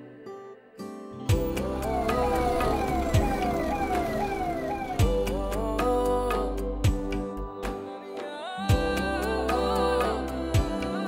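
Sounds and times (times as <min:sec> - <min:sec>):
background music: 0:00.0 - 0:11.0
ambulance siren: 0:01.6 - 0:05.3.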